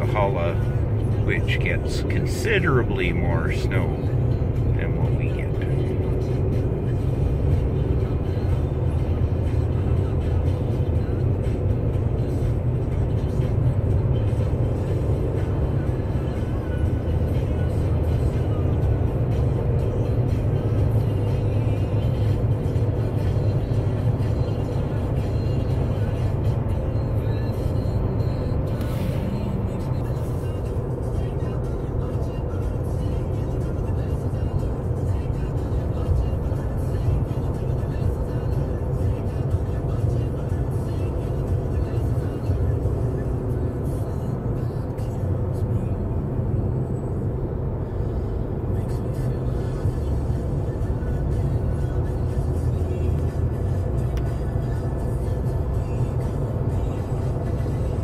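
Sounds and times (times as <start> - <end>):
vehicle engine and tyre rumble: 0.0 - 58.0.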